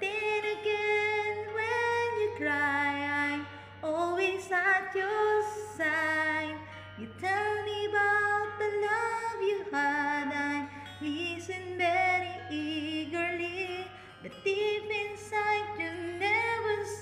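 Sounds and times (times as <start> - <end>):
woman singing slow song: 0.0 - 17.0.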